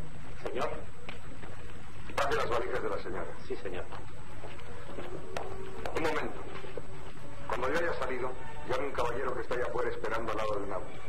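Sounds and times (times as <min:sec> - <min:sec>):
faint background music: 0:00.0 - 0:11.0
film soundtrack hum and hiss: 0:00.0 - 0:11.0.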